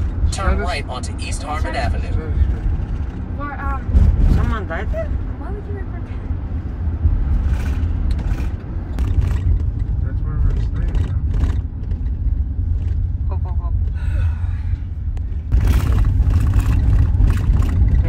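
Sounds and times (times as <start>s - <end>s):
car engine and tyres rumbling: 0.0s - 18.0s.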